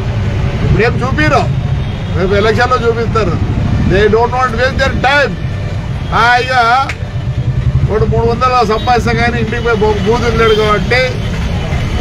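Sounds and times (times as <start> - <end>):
man speaking: 0.7 - 7.0, 7.8 - 11.2
steady low rumble: 2.8 - 8.6.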